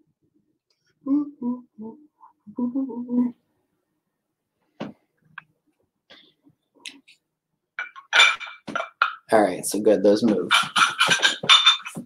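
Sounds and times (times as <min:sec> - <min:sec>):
glass ashtrays clinking: 0:07.8 - 0:09.3, 0:10.5 - 0:12.0.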